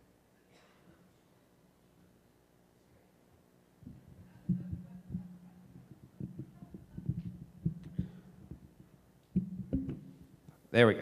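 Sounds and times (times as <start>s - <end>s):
low steady hum: 0.0s - 11.0s
equipment knocking on table: 9.4s - 10.2s.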